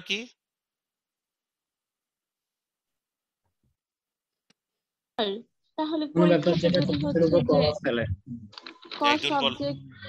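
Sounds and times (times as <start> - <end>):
person talking: 0.0 - 0.4, 6.1 - 10.0.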